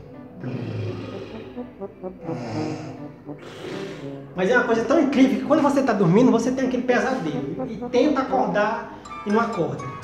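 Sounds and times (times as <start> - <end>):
background music: 0.0 - 10.0
man snoring: 0.4 - 4.2.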